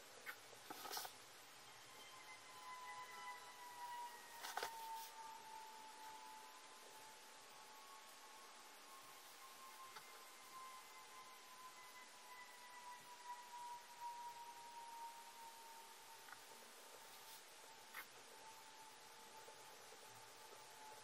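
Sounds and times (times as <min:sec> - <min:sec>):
faint high whine: 0:00.0 - 0:21.0.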